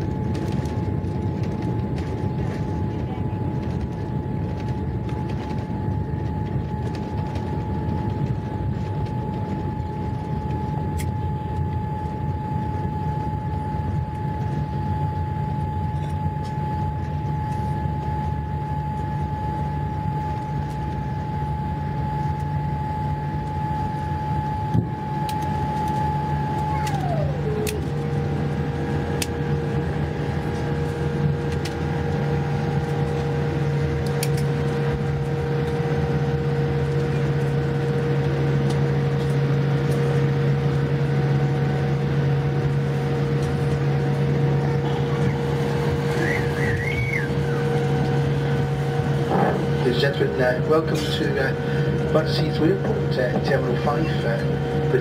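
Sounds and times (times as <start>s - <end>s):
low rumble of engines and airflow: 0.0s - 55.0s
high whine: 4.4s - 55.0s.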